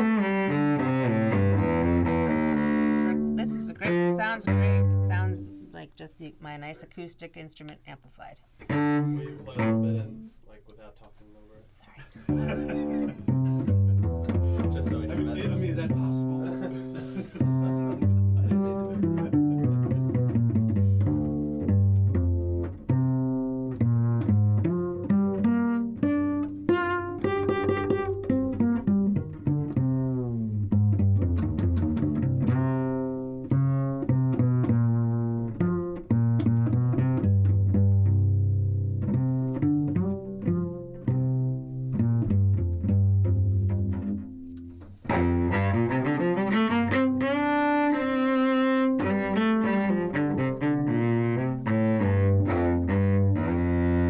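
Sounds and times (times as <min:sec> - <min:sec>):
solo cello playing: 0:00.0 - 0:05.9, 0:08.6 - 0:10.5, 0:12.2 - 0:54.0.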